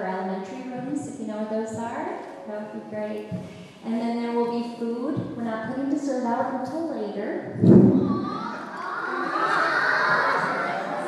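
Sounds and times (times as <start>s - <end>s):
children cheering and shouting: 7.8s - 11.0s.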